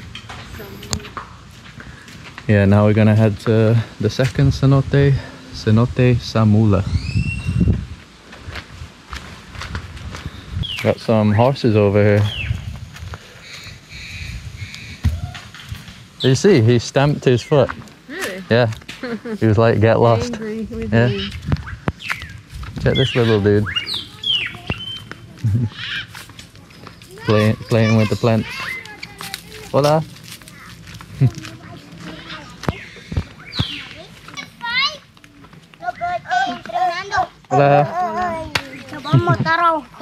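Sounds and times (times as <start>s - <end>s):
children playing and calling out: 0.0s - 1.4s, 15.0s - 15.9s, 23.1s - 40.0s
faint bird calls: 21.0s - 26.3s
child's high-pitched shout: 27.1s - 29.7s, 35.8s - 38.6s.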